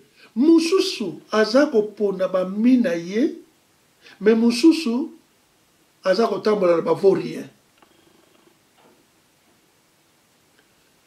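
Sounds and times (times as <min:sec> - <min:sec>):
man speaking: 0:00.0 - 0:03.5, 0:04.1 - 0:05.2, 0:06.0 - 0:07.6.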